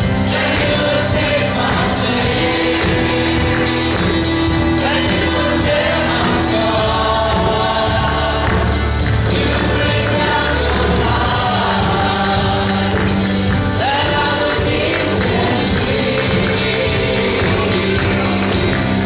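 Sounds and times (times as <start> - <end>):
keyboard accompaniment: 0.0 - 19.0
women singing gospel: 0.0 - 19.0.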